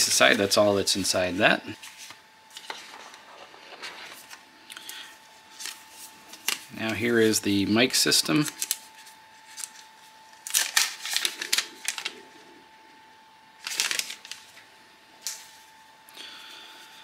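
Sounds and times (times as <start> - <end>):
plastic film crinkling: 1.8 - 7.5, 8.2 - 12.4, 13.6 - 15.6.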